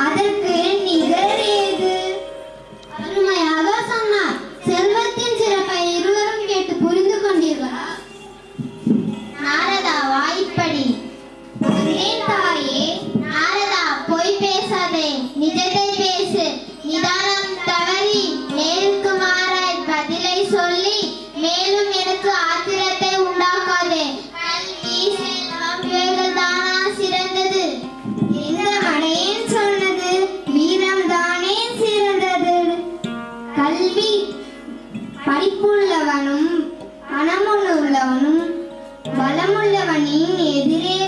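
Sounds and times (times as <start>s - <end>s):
musical accompaniment: 0.0s - 41.0s
girl singing into microphone: 11.7s - 32.8s.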